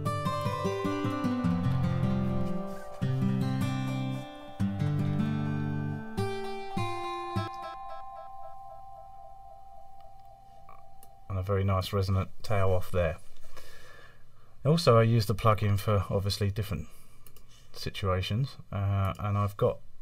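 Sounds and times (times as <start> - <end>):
guitar playing with delay: 0.0 - 11.5
resonant delay echoes: 0.2 - 11.8.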